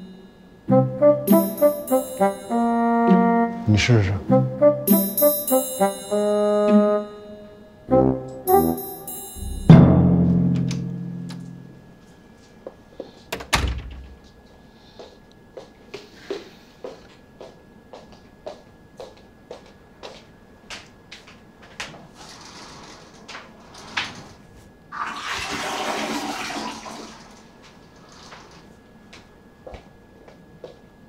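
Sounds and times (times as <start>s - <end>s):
door closing with thud: 13.3s - 14.2s
toilet flushing: 24.9s - 28.6s.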